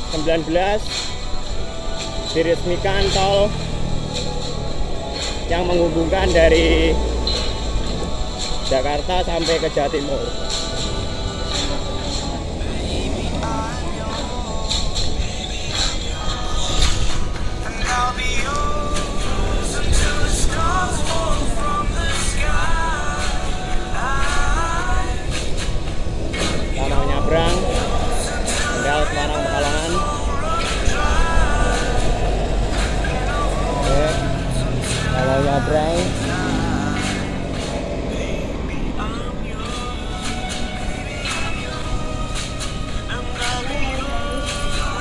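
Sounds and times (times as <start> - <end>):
background music with singing: 0.0 - 45.0
road traffic passing: 0.0 - 45.0
wind rumble on microphone: 10.3 - 45.0.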